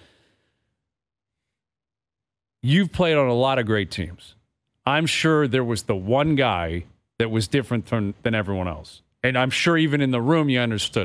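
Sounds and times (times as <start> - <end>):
faint breath: 0.0 - 1.7.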